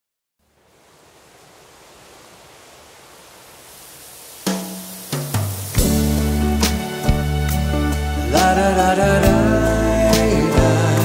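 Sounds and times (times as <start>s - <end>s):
steady rushing noise: 0.4s - 8.4s.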